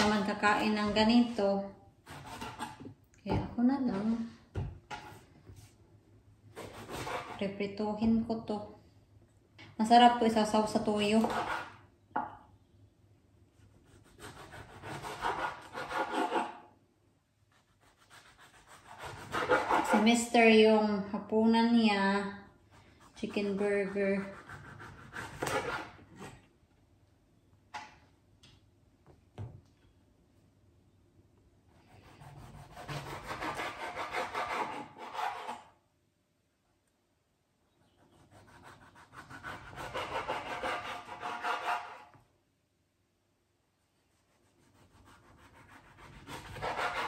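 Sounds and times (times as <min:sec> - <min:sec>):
knife sawing through vegetable: 0:06.6 - 0:07.4, 0:11.2 - 0:11.8, 0:13.8 - 0:16.6, 0:17.8 - 0:20.1, 0:23.0 - 0:26.0, 0:31.9 - 0:35.7, 0:38.2 - 0:42.1, 0:44.3 - 0:47.0
blade scraping on cutting board: 0:23.4 - 0:26.4.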